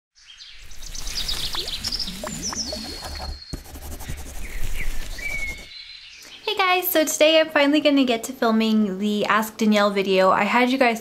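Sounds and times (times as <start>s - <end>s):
bird-like chirps: 0.2s - 6.5s
whistled pitch glides: 0.9s - 5.8s.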